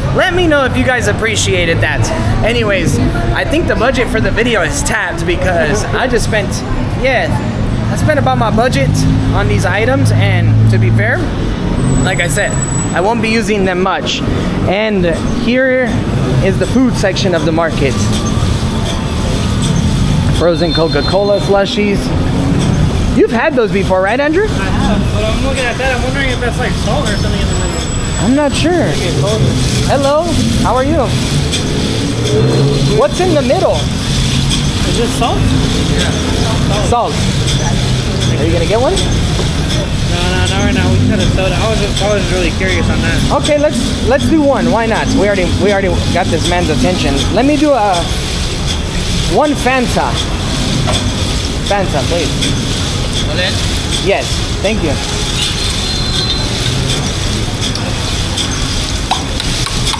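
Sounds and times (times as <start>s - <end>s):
street market background: 0.0s - 59.9s
traffic rumble: 0.0s - 59.9s
glass bottles clinking: 26.3s - 59.9s.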